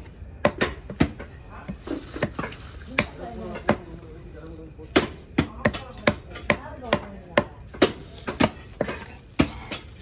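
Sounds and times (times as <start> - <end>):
knife chopping on wooden block: 4.9 - 9.9.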